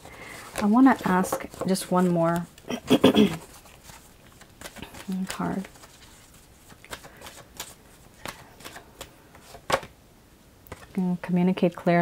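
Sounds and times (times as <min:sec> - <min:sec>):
cards being shuffled by hand: 0:00.0 - 0:09.9.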